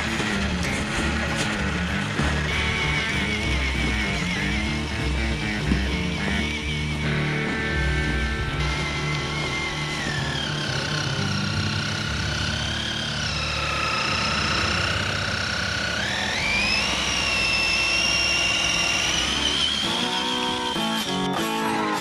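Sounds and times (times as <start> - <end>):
toy car electric motor whining: 0.0 - 22.0.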